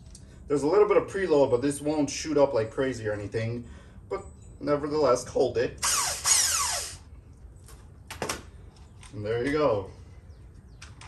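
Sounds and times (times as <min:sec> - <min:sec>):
impact wrench whining: 0:05.8 - 0:07.1.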